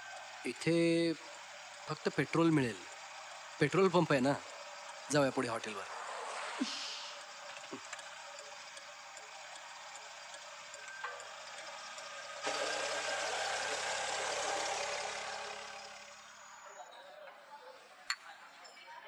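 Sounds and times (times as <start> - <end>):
car engine running: 0.0 - 16.8
faint regular ticking: 1.3 - 5.7, 7.2 - 12.3.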